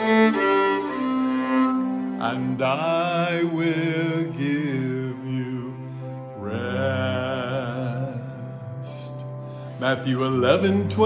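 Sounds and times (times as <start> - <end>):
man singing with vibrato: 2.2 - 11.0.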